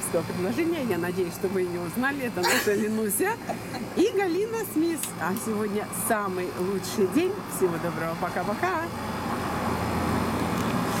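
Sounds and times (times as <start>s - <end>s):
steady outdoor background noise: 0.0s - 11.0s.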